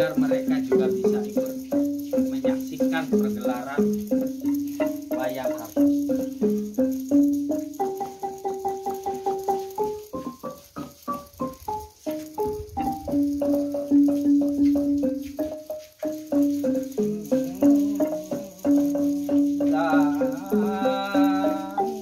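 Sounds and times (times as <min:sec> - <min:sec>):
xylophone melody: 0:00.0 - 0:22.0.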